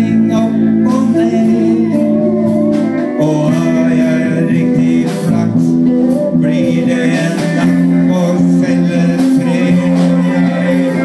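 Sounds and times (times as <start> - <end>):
bass: 0.0 - 11.0
drums: 0.0 - 11.0
electric guitar: 0.0 - 11.0
keyboard: 0.0 - 11.0.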